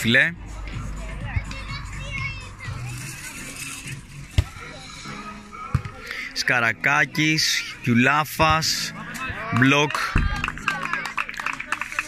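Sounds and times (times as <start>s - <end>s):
background music: 0.0s - 12.0s
spectators chattering: 0.5s - 6.5s, 8.8s - 12.0s.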